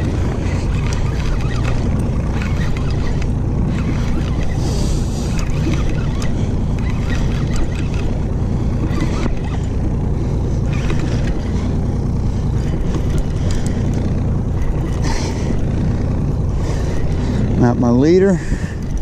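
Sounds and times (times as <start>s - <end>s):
outboard motor idling: 0.0s - 19.0s
light knocks of gear: 5.2s - 15.6s.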